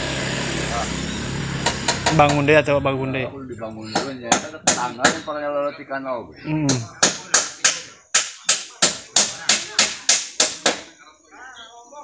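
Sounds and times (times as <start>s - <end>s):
hammer striking: 1.6s - 2.8s, 3.7s - 5.4s, 6.7s - 10.9s.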